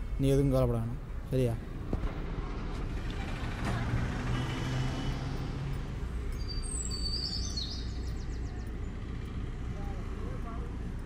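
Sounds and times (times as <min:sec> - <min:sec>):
bus diesel engine droning: 0:00.0 - 0:11.0.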